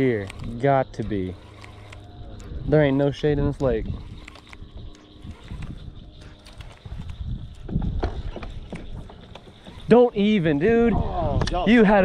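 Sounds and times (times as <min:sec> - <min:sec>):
fishing reel clicking: 0:00.0 - 0:07.5
wind rumble on microphone: 0:02.1 - 0:12.0.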